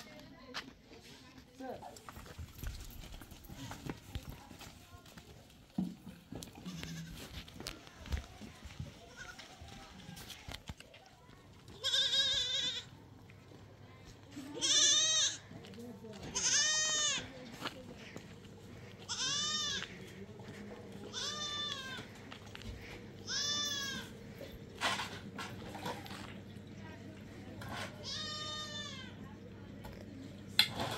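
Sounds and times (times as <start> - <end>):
young goats bleating: 6.5 - 7.6, 8.9 - 9.6, 11.7 - 13.0, 14.3 - 15.6, 16.2 - 17.3, 18.8 - 20.2, 21.0 - 24.2, 27.9 - 29.2.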